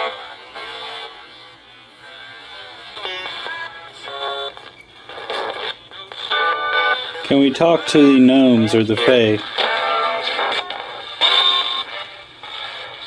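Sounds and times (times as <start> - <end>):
chopped radio music and voices: 0.0 - 13.0
radio static: 7.3 - 9.8.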